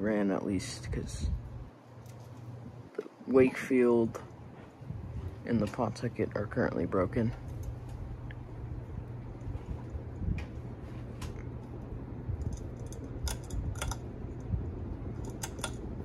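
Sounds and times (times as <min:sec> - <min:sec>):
ceiling fan humming: 0:00.0 - 0:16.0
fan pull-chain switch clicks: 0:11.2 - 0:16.0.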